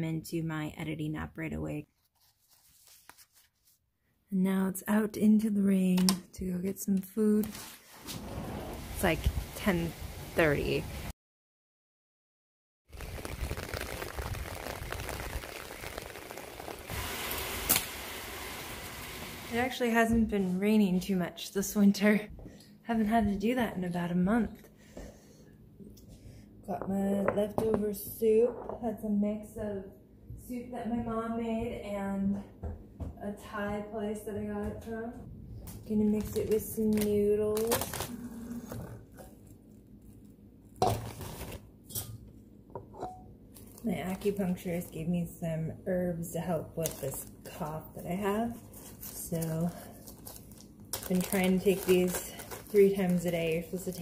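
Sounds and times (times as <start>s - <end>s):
rain falling hiss: 12.9s - 19.6s.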